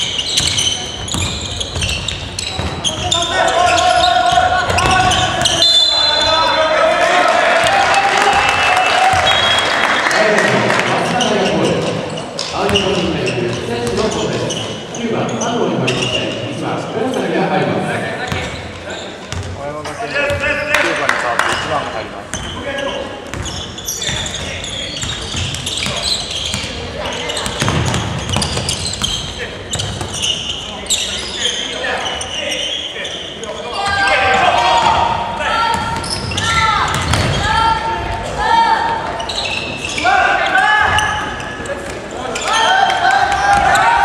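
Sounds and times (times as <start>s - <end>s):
sneakers squeaking: 0.0s - 6.8s, 7.7s - 10.0s, 10.8s - 17.4s, 18.2s - 20.7s, 21.5s - 44.0s
basketball bouncing: 0.3s - 3.1s, 4.3s - 5.6s, 27.4s - 29.2s, 35.7s - 37.4s
players shouting: 2.8s - 11.6s, 33.6s - 41.5s, 42.2s - 44.0s.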